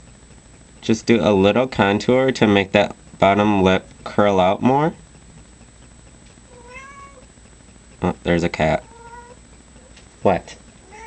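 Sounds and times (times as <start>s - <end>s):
cat meowing: 6.5s - 7.2s, 8.8s - 9.4s.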